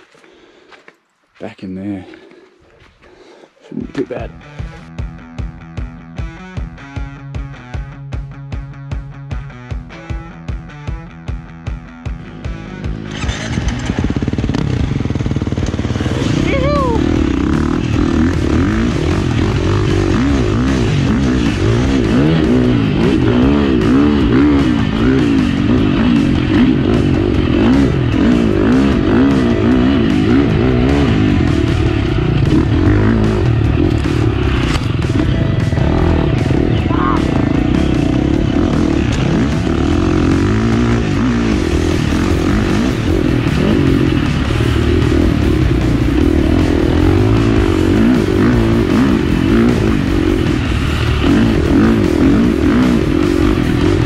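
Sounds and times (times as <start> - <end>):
dirt bike engine revving: 12.2 - 54.0.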